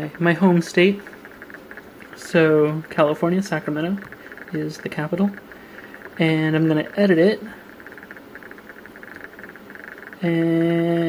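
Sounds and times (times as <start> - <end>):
faint background buzz: 0.0 - 11.0.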